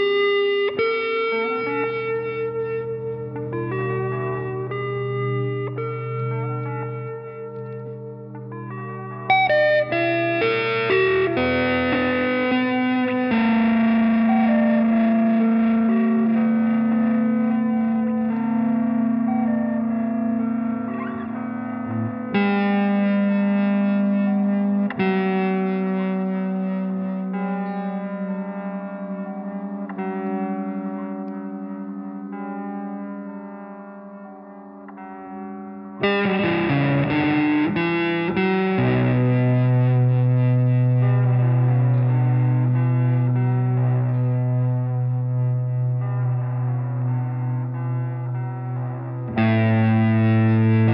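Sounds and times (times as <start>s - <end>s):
electric guitar with effects: 0.0s - 50.9s.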